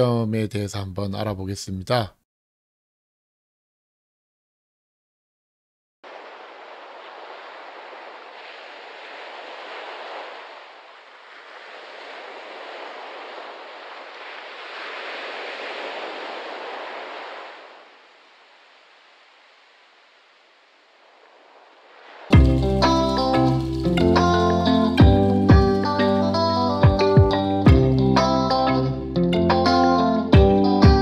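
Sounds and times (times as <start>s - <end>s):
waves washing on sandy shore: 6.0s - 27.0s.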